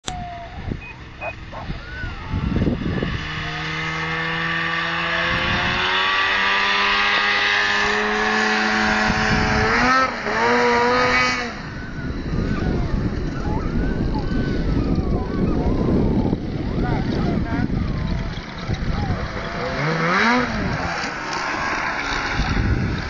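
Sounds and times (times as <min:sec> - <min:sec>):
snowmobile engine revving: 0:00.4 - 0:23.0.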